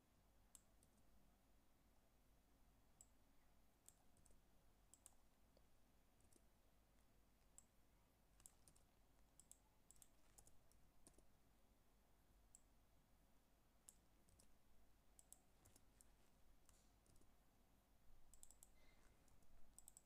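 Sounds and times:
mouse clicks: 0:03.9 - 0:05.3, 0:06.2 - 0:07.7, 0:08.4 - 0:11.3, 0:13.8 - 0:14.6, 0:15.2 - 0:17.3, 0:18.3 - 0:20.0.

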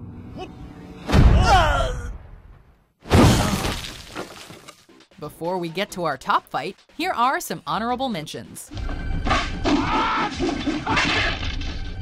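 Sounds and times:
body crashing through wooden boards: 0:03.0 - 0:04.7.

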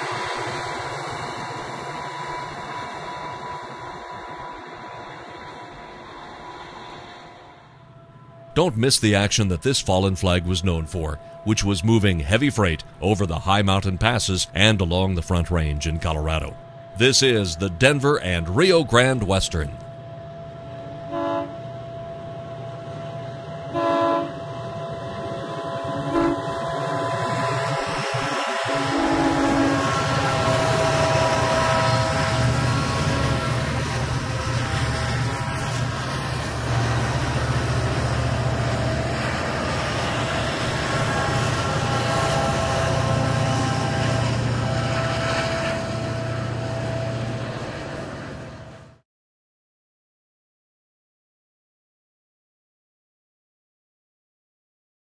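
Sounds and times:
train horn blasts: 0:00.0 - 0:08.7, 0:11.0 - 0:11.9, 0:16.6 - 0:48.8
locomotive engines droning: 0:00.0 - 0:49.0
rolling train cars: 0:00.0 - 0:49.0.

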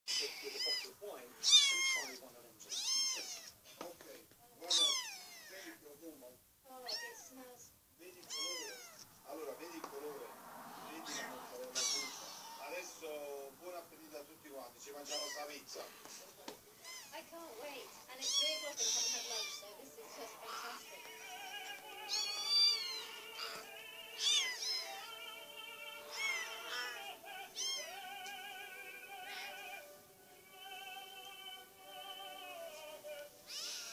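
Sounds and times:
kitten mewing: 0:00.1 - 0:03.6, 0:04.6 - 0:05.8, 0:06.8 - 0:07.4, 0:08.2 - 0:09.1, 0:11.0 - 0:12.7, 0:15.0 - 0:15.6, 0:16.8 - 0:17.3, 0:18.1 - 0:21.0, 0:22.1 - 0:25.2, 0:26.0 - 0:28.4, 0:29.2 - 0:29.8, 0:33.5 - 0:33.9
background music: 0:19.7 - 0:33.5.

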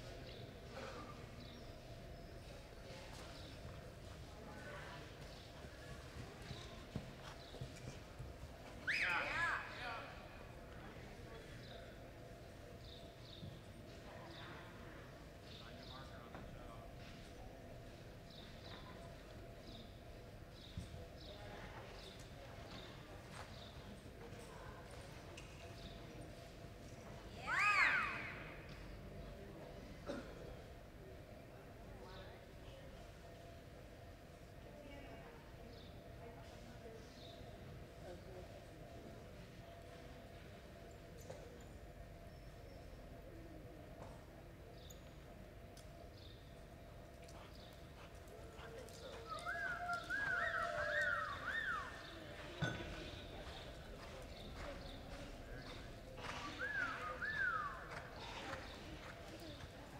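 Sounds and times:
horse hooves on dirt: 0:05.0 - 0:08.9, 0:46.3 - 0:59.9.

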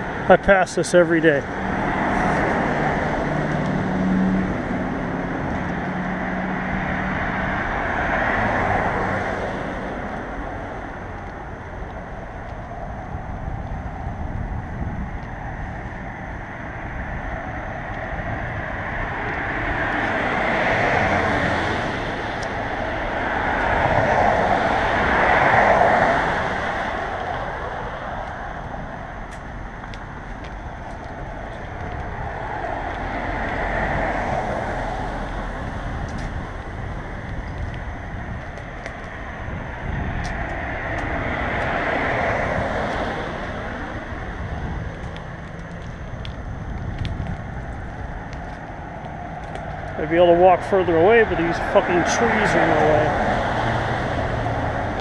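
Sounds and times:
cars passing: 0:00.0 - 0:55.0.

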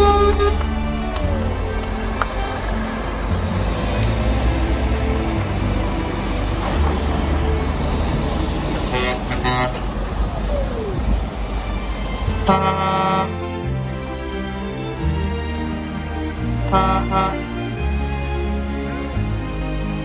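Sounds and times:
horn toots: 0:00.0 - 0:04.1, 0:08.8 - 0:10.0, 0:12.4 - 0:13.4, 0:16.6 - 0:17.6
truck diesel engine rumbling: 0:00.0 - 0:20.0
tyre noise on wet road: 0:00.0 - 0:20.0.

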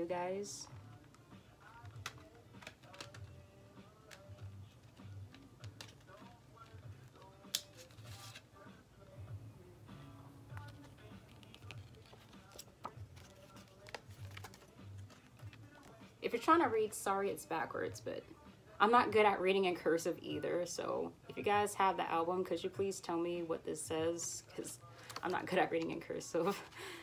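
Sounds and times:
faint music: 0:00.0 - 0:27.0
packaging clicks and rustles: 0:00.7 - 0:08.4, 0:10.5 - 0:16.0, 0:25.0 - 0:25.9.

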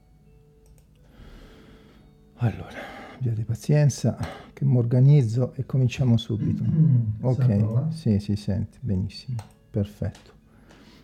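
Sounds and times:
faint steady hum: 0:00.0 - 0:09.7.

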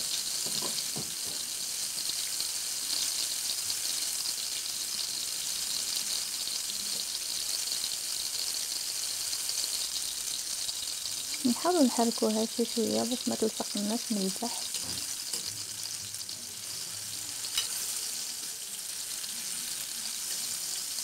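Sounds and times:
food sizzling in hot oil: 0:00.0 - 0:21.0.

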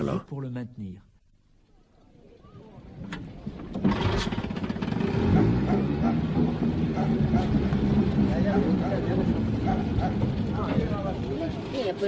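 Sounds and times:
outboard motor running: 0:03.7 - 0:10.9
people's voices: 0:05.8 - 0:12.0.

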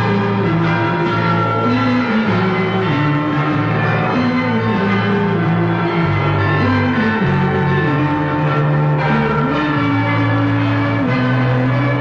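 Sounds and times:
church bells ringing: 0:00.0 - 0:12.0
sustained orchestral music: 0:00.0 - 0:12.0.

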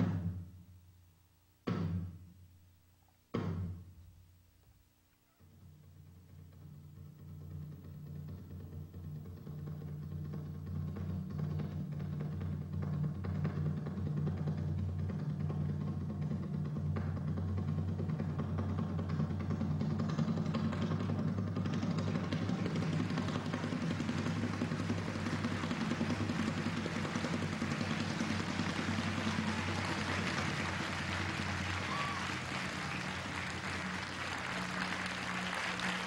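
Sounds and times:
audience applauding: 0:21.9 - 0:36.0.

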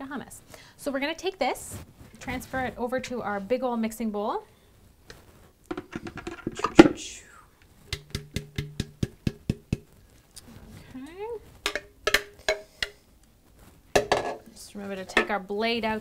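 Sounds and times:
plastic bowl knocking on bowl: 0:05.7 - 0:07.0, 0:07.9 - 0:09.9, 0:11.6 - 0:12.7, 0:14.0 - 0:14.4
plastic bowl tapping: 0:05.7 - 0:07.0, 0:07.9 - 0:10.0, 0:11.6 - 0:13.0.

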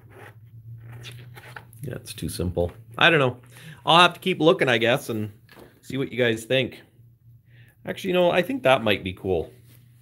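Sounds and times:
paper pages turning: 0:00.0 - 0:01.8.

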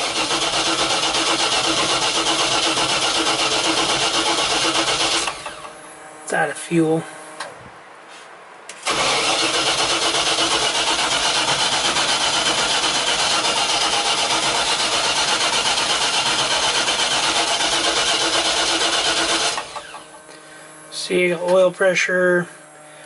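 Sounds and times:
engine cranking without starting: 0:00.0 - 0:05.8, 0:08.7 - 0:20.1.

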